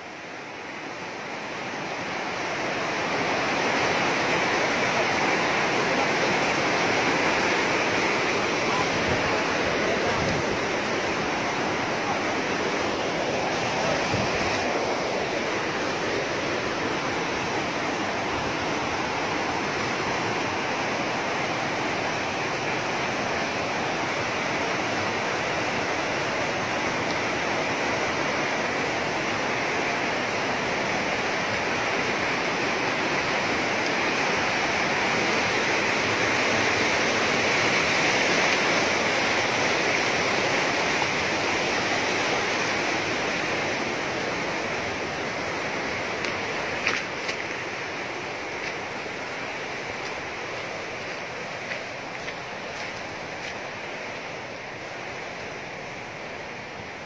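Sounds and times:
river rushing through rapids: 0:00.0 - 0:57.0.

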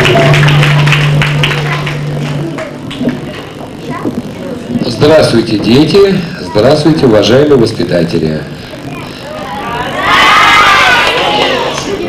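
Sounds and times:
children shouting together: 0:09.9 - 0:11.6.

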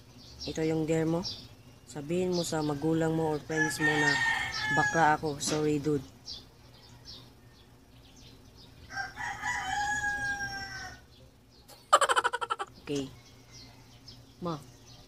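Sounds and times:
rooster crowing: 0:03.4 - 0:05.2, 0:08.8 - 0:11.1.

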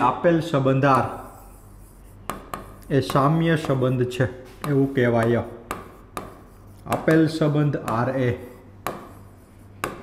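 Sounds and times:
pen tapping on screen: 0:02.2 - 0:03.8, 0:04.6 - 0:07.2, 0:07.8 - 0:08.1, 0:08.8 - 0:09.2.

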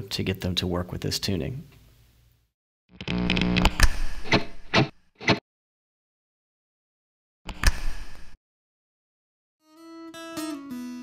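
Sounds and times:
guitar chord and struck notes: 0:09.7 - 0:11.0.

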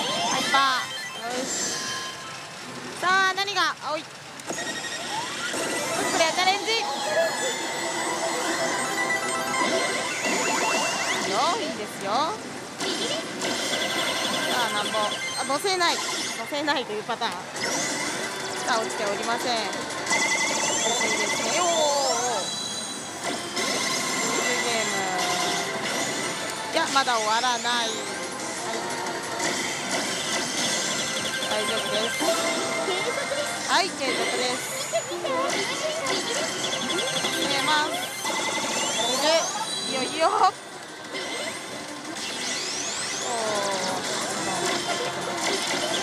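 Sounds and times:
electronic slot machine effects: 0:00.0 - 0:03.1, 0:04.5 - 0:46.0
gaming parlor din: 0:00.0 - 0:46.0
sweeping voice-like machine cry: 0:04.7 - 0:11.7, 0:41.3 - 0:46.0.

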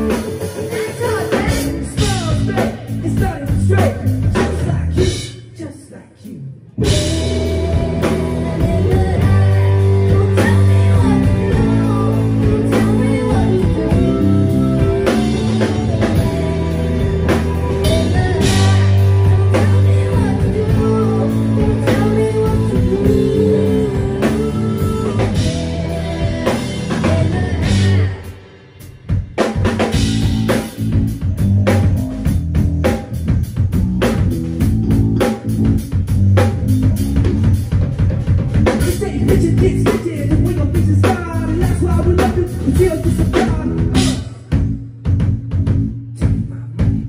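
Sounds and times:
driving drum beat: 0:00.0 - 0:05.8, 0:06.8 - 0:47.0
live rock band playing: 0:00.0 - 0:05.9, 0:06.6 - 0:47.0
vocals: 0:00.0 - 0:31.1, 0:38.6 - 0:44.7, 0:46.1 - 0:47.0.

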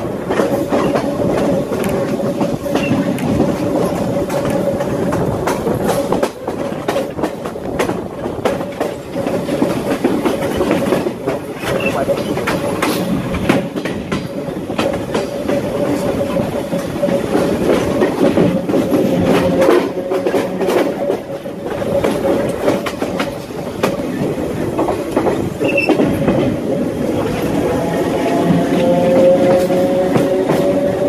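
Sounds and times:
electric train rumble and whine: 0:00.0 - 0:31.0
wheels clicking over rail joints: 0:00.0 - 0:31.0.

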